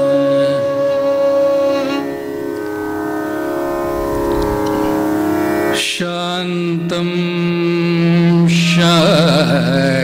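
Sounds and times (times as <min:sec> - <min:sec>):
violin: 0:00.0 - 0:09.3
steady drone: 0:01.7 - 0:08.2
man singing: 0:05.7 - 0:10.0.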